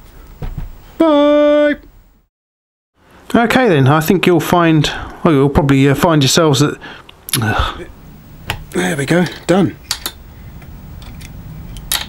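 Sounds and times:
sharp metallic click: 9.8 - 10.2, 11.0 - 12.0.

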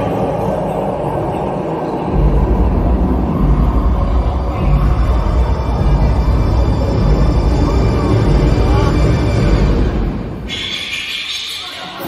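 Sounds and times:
deep rumble over loudspeakers: 0.0 - 10.7
eerie show music: 0.0 - 11.0.

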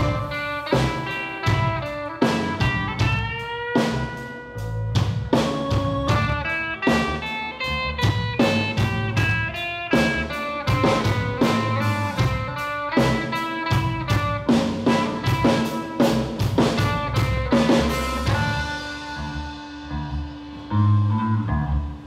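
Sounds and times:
drum kit beat: 0.0 - 21.8
electric guitars picking melody: 0.0 - 22.0.

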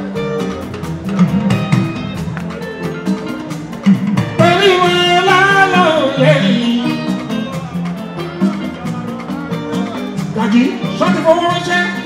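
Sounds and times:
electric guitars: 0.0 - 12.0
steady drum beat: 0.0 - 12.0.

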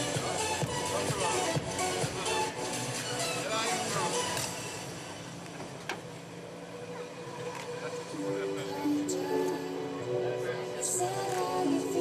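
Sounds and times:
background music: 0.0 - 5.4, 6.4 - 12.0.

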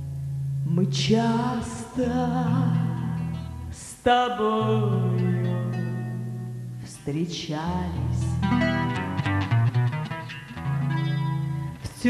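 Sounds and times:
acoustic guitar: 0.0 - 12.0
person singing: 0.6 - 9.0, 11.7 - 12.0.

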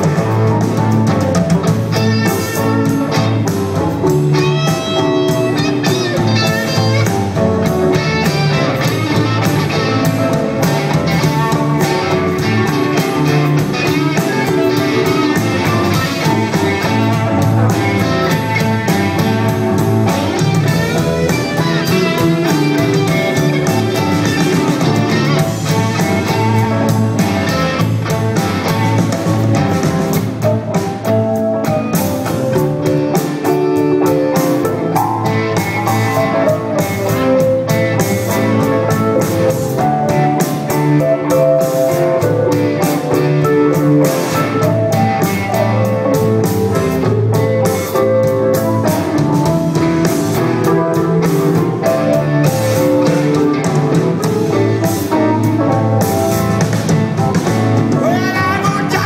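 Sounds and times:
live blues-rock band: 0.0 - 59.0.

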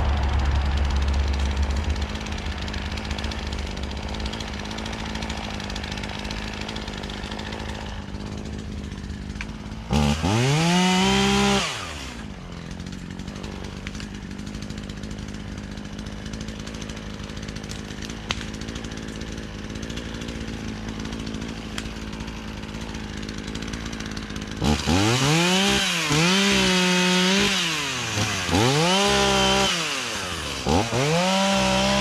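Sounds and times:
chainsaw idling and revving: 0.0 - 32.0.

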